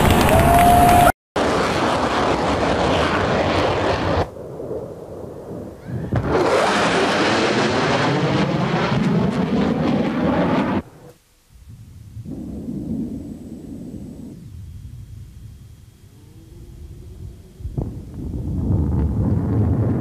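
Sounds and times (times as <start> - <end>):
fighter jet roaring past: 5.5 - 11.1.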